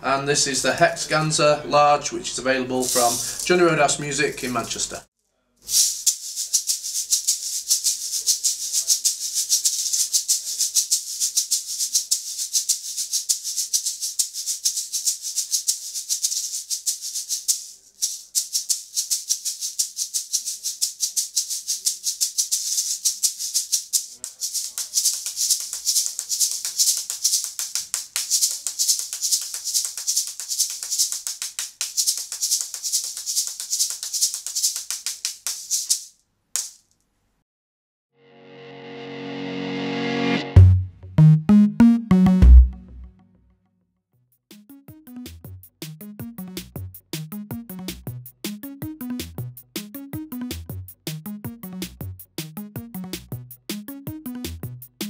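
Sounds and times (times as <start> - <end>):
metal shaker rattling: 2.8 - 4.9, 5.6 - 37.0.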